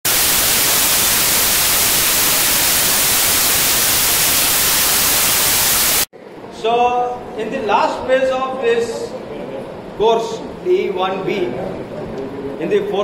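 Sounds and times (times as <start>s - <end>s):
white noise static hiss: 0.0s - 13.0s.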